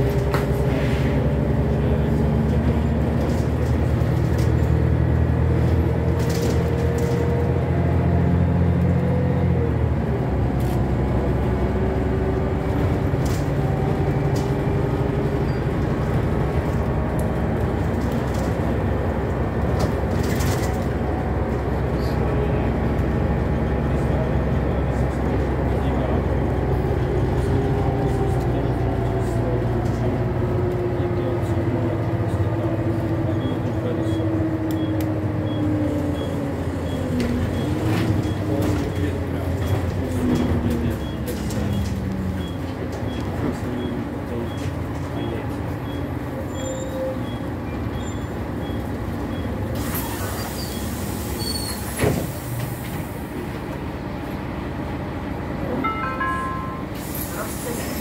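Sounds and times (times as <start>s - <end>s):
bus diesel engine drone: 0.0s - 58.0s.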